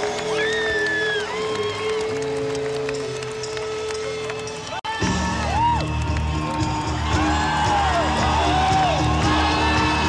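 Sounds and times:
crowd noise and applause: 0:00.0 - 0:10.0.

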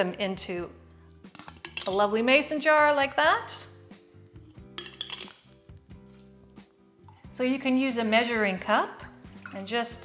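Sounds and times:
quiet background music: 0:00.0 - 0:10.0
metal tongs clinking on glass jar: 0:01.3 - 0:02.1, 0:04.4 - 0:05.6.

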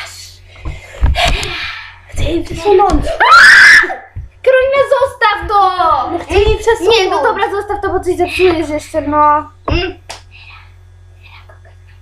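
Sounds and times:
girl screaming: 0:03.0 - 0:04.1.

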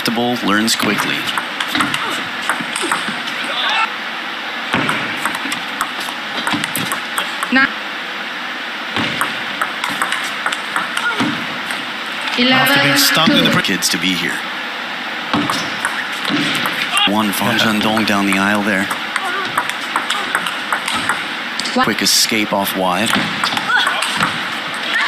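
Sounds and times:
hall background hum: 0:00.0 - 0:25.0
table tennis ball clicks: 0:09.1 - 0:11.1, 0:17.9 - 0:21.7.

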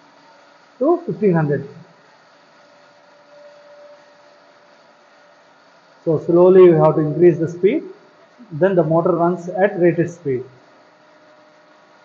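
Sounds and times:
electric motor hum and hiss: 0:00.0 - 0:12.0.

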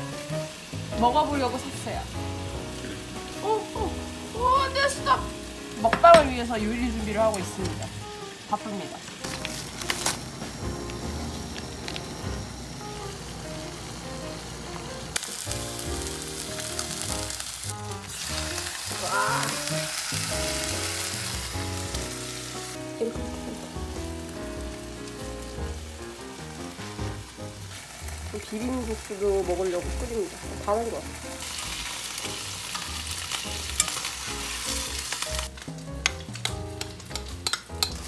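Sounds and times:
background music: 0:00.0 - 0:38.0
meat sizzling in a frying pan: 0:00.0 - 0:38.0.

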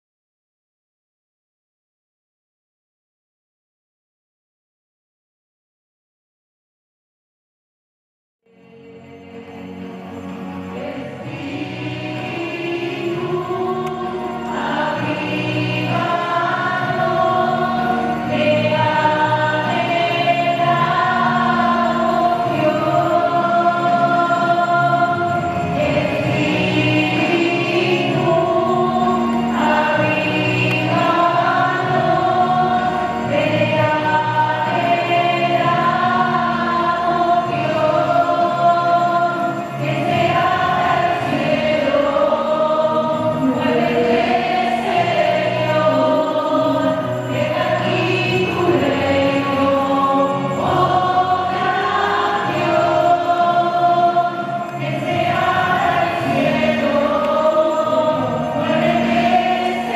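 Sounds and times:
choir singing slow piece: 0:08.5 - 0:59.9.

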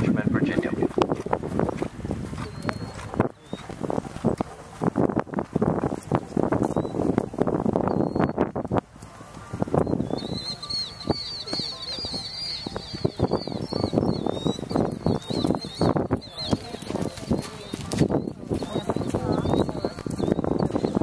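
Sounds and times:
low voices talking: 0:00.0 - 0:21.0
small bird chirping: 0:07.8 - 0:08.4, 0:09.7 - 0:21.0.

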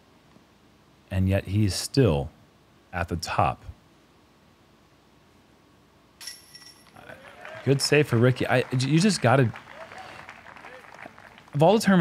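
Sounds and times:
disc hitting metal chains: 0:06.2 - 0:07.0.

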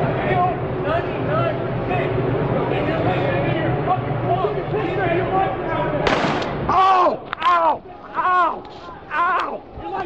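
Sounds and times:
loud gunshot: 0:06.0 - 0:06.7.

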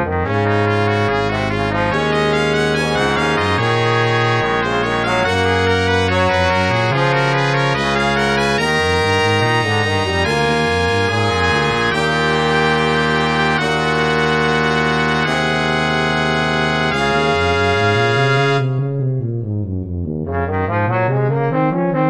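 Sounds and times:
brass quartet playing chords: 0:00.0 - 0:19.0, 0:20.1 - 0:22.0
tuba playing quick notes: 0:00.0 - 0:19.0, 0:20.2 - 0:22.0.

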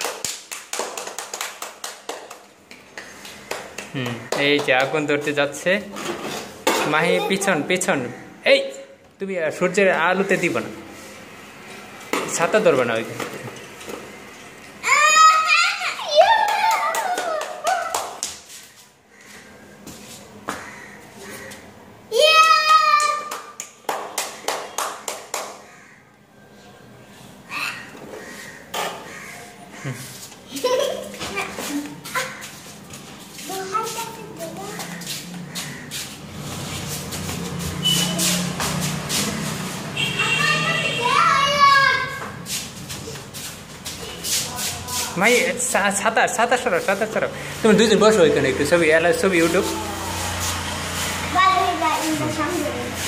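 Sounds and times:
sharp hand claps: 0:00.0 - 0:05.0, 0:16.3 - 0:18.5, 0:22.4 - 0:25.7.

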